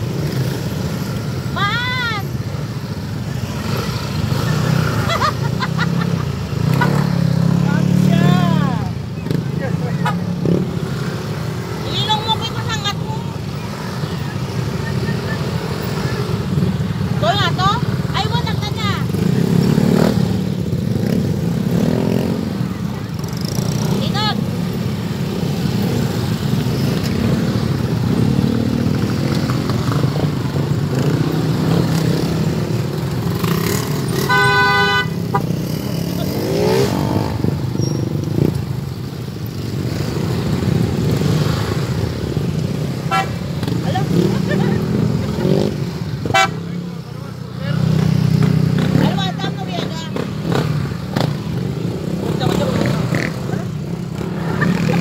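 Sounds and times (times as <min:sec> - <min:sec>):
horn toot: 0:34.2 - 0:35.8, 0:43.0 - 0:43.5, 0:46.2 - 0:46.8.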